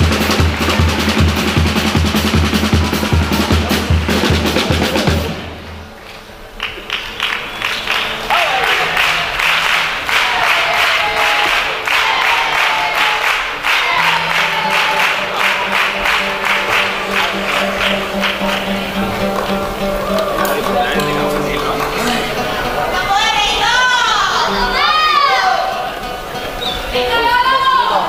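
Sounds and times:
audience applauding and cheering: 0.0 - 5.4, 6.5 - 26.0
drum: 0.0 - 5.7.

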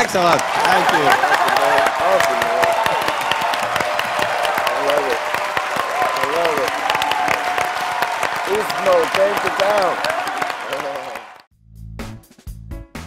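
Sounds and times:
audience applauding: 0.0 - 11.5.

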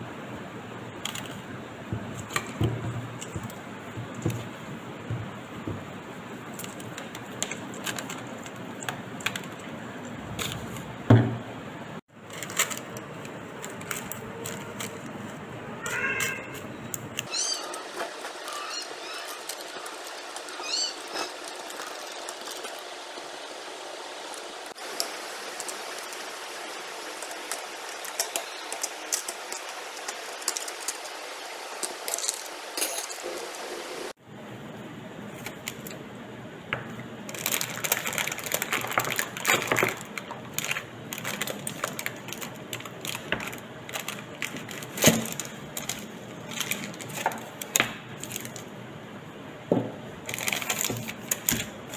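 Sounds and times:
baking paper crinkling: 1.0 - 11.0, 12.1 - 32.7, 35.2 - 36.0, 37.2 - 48.7, 50.2 - 51.9
animal calls: 15.8 - 16.6, 17.3 - 22.1.

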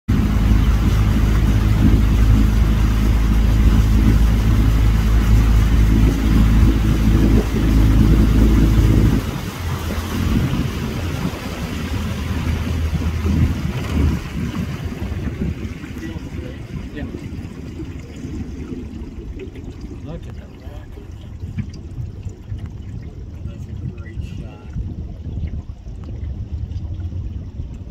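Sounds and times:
boat motor running: 0.0 - 27.9.

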